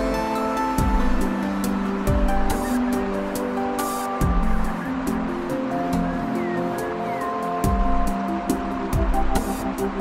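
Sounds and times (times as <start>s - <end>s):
slow relaxation music: 0.0s - 10.0s
soft rushing wash: 0.0s - 10.0s.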